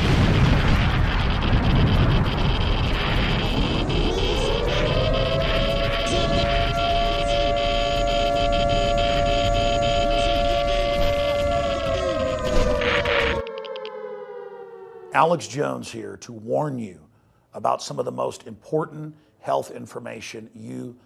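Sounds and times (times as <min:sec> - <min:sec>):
dense rumbling noise with crackles: 0:00.0 - 0:13.4
air-raid siren wailing: 0:00.0 - 0:15.8.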